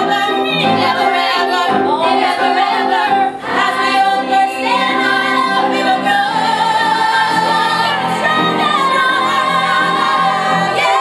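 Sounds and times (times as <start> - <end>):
musical accompaniment: 0.0 - 11.0
show tune singing: 0.0 - 11.0.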